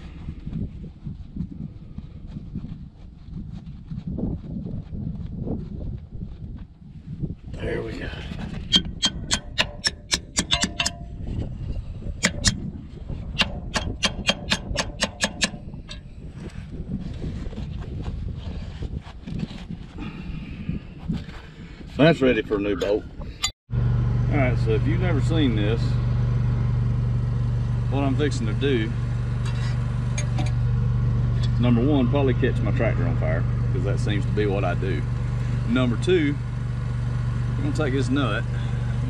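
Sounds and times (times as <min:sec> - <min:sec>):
hammer striking steel punch: 0:08.7 - 0:11.2, 0:12.2 - 0:12.6, 0:13.4 - 0:16.0, 0:30.1 - 0:30.6.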